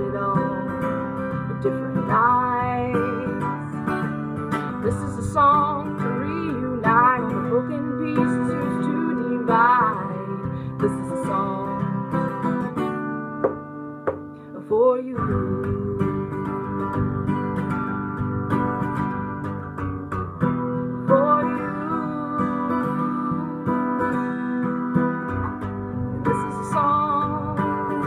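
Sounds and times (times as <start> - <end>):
woman singing slow song: 0.0 - 12.4, 14.4 - 17.5, 20.1 - 24.9, 26.1 - 28.0
strummed acoustic guitar: 0.0 - 28.0.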